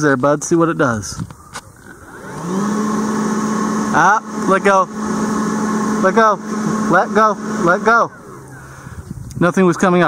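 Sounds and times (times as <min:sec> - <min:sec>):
leaf blower whine: 0:01.5 - 0:10.0.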